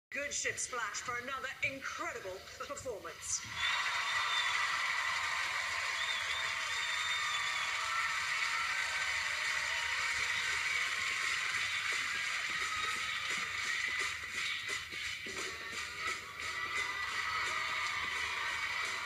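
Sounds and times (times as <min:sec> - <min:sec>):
faint whoops: 0:03.5 - 0:10.6
audience clapping: 0:03.5 - 0:19.0.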